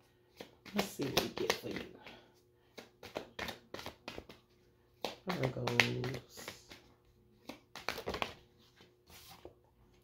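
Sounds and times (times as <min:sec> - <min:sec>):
cards being shuffled: 0:00.1 - 0:09.6.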